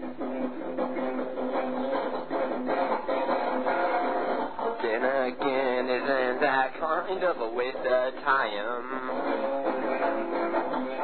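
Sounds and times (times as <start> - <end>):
guitar strumming chords: 0.0 - 11.0.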